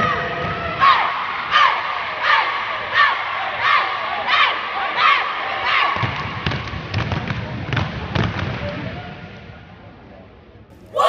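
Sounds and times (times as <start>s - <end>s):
crowd noise: 10.7s - 11.0s
group shouting a chant in unison: 10.8s - 11.0s.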